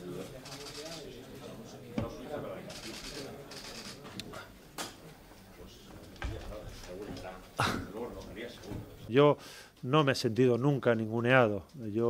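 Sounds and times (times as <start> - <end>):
faint voices: 0.0 - 9.1.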